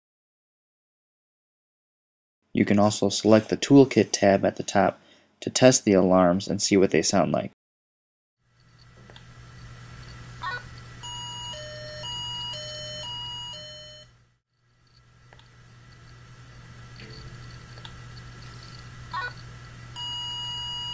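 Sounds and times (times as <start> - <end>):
steady low hum: 8.5 - 14.0, 14.6 - 20.9
two-tone alarm beeps: 11.0 - 14.1, 20.0 - 20.9.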